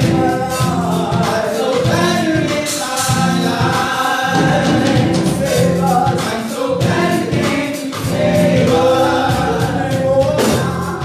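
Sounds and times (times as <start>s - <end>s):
choir singing: 0.0s - 11.0s
drums: 0.0s - 11.0s
keyboard: 0.0s - 11.0s
lead singers: 0.0s - 11.0s.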